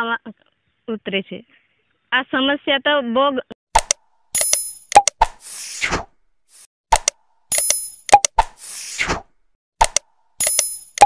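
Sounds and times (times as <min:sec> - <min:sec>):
sharp clicks and pops: 0:03.7 - 0:05.4, 0:06.6 - 0:08.8, 0:09.8 - 0:11.0.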